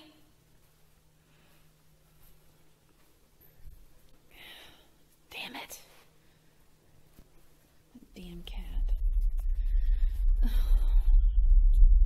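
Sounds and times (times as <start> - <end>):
person whispering: 5.3 - 6.1, 8.0 - 9.1
low rumbling drone: 8.2 - 12.0.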